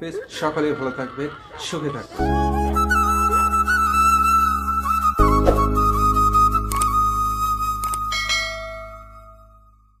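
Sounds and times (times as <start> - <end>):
background music: 1.7 - 9.8
bell chime: 8.1 - 9.9.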